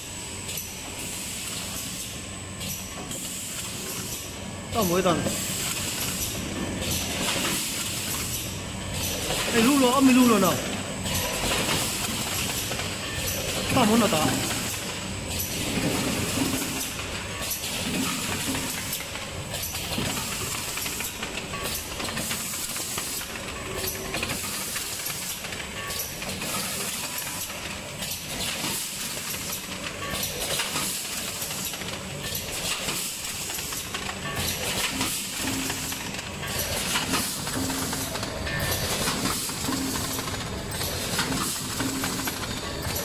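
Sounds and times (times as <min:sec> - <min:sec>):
packing machine rattling: 0:04.8 - 0:43.0.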